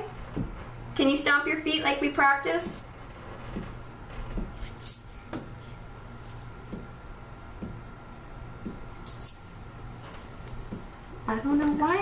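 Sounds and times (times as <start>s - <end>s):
faint irregular thumps: 0.2s - 0.8s, 2.7s - 4.7s, 7.6s - 7.9s.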